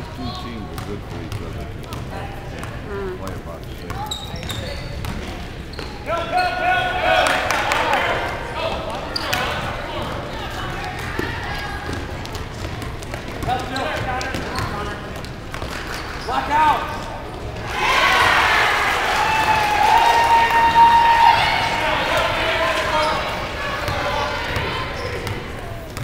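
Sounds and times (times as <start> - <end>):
basketball bouncing on court: 0.7 - 6.1, 8.2 - 16.1, 23.8 - 26.0
spectators shouting and talking: 4.0 - 26.0.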